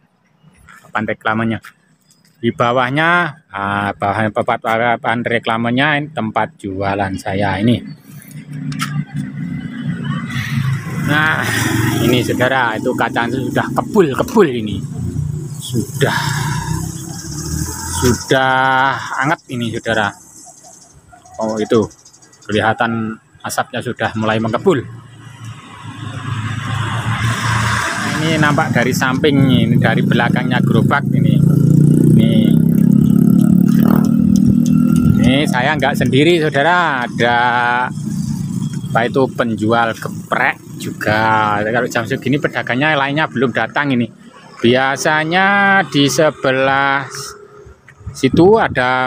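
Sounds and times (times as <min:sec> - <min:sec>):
motorcycle engine running: 0:28.1 - 0:42.4.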